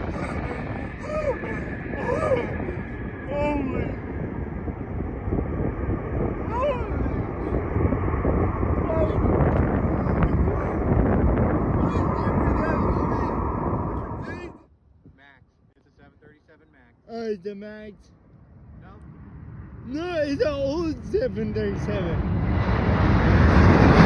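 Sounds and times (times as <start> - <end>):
jet engines roaring with whine: 0.0 - 14.6, 17.9 - 24.0.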